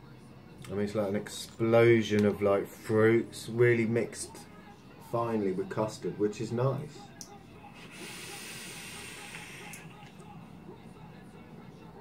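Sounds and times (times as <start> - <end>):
vape hiss and sizzle: 7.2 - 10.3
exhale of vapour: 7.8 - 10.0.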